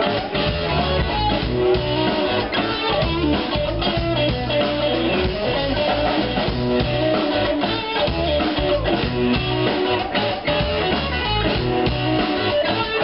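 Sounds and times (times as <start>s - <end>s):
drum kit: 0.0s - 13.0s
electric guitars: 0.0s - 13.0s.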